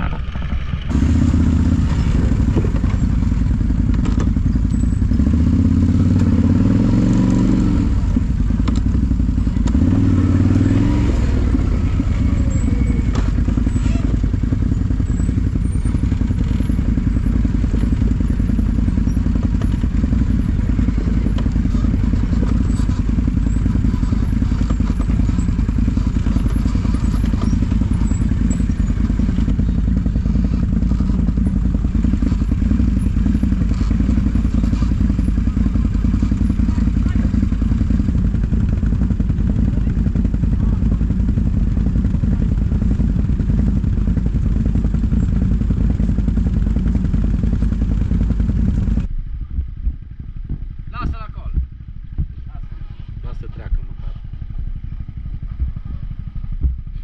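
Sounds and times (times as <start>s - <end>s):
quad bike engine running: 0.0s - 57.0s.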